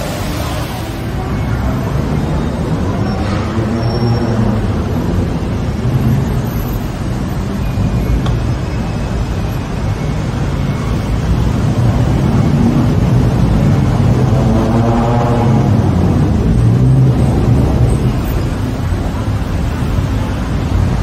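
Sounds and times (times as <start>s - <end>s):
city traffic rumble: 0.0s - 21.0s
passing vehicle engine: 12.4s - 21.0s.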